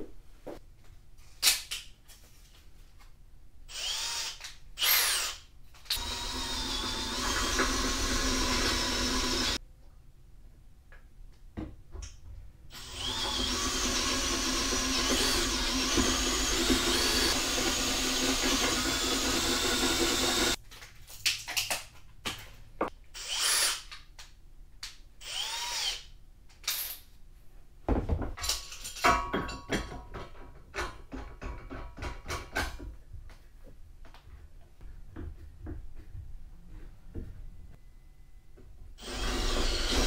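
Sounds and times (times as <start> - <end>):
drill boring through metal: 3.7 - 5.4, 6.0 - 9.6, 12.7 - 20.6, 25.2 - 26.0, 39.0 - 40.0.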